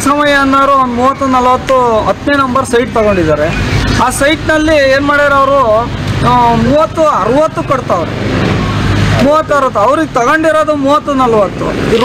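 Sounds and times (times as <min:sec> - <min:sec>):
man speaking: 0:00.0 - 0:08.2, 0:09.1 - 0:12.0
vehicle passing by: 0:03.0 - 0:12.0.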